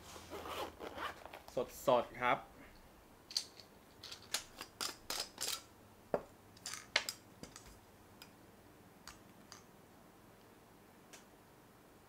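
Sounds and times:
small metal parts clicking: 3.3s - 5.7s.

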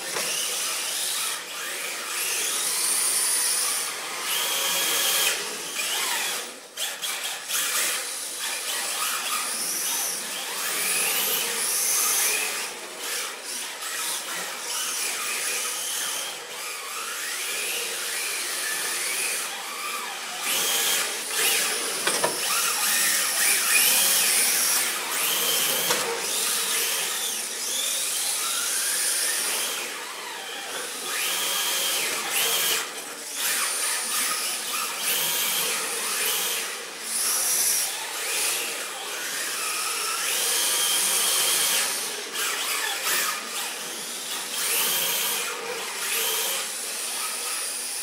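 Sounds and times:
electric motors whining: 0.0s - 48.0s.

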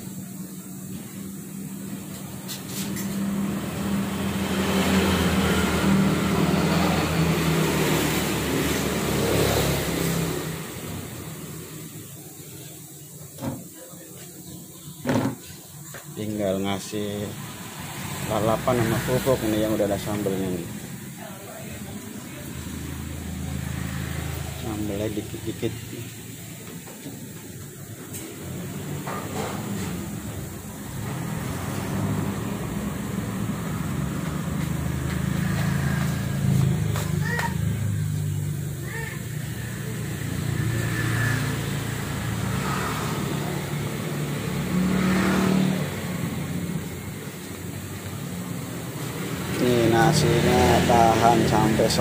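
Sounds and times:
faint voices: 12.1s - 17.4s.

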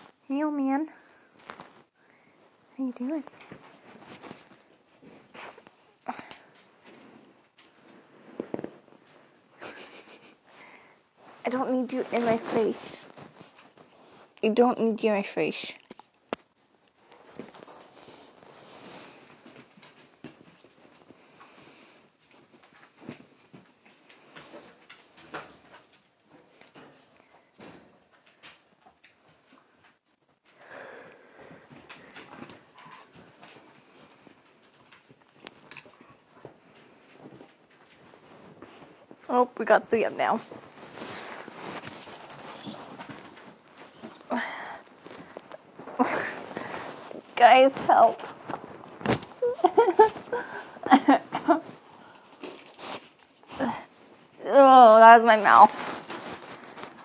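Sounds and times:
shuffling on a bed: 1.0s - 6.0s, 6.7s - 14.4s, 36.3s - 54.4s, 55.2s - 57.0s
dog sniffing: 52.0s - 53.6s.

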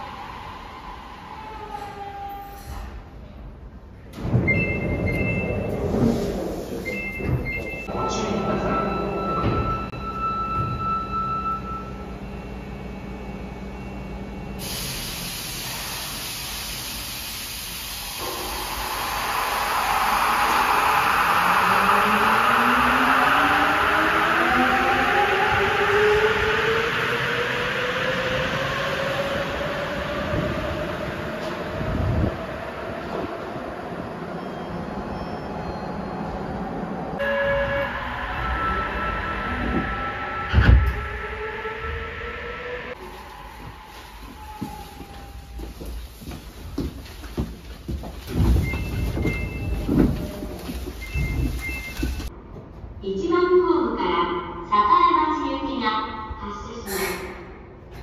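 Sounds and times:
train rushing noise: 14.6s - 53.0s.

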